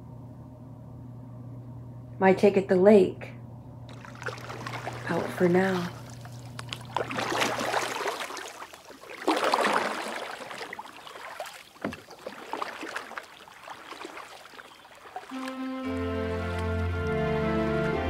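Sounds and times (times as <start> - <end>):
water lapping: 3.9 - 17.4
soft slow music: 15.3 - 18.0.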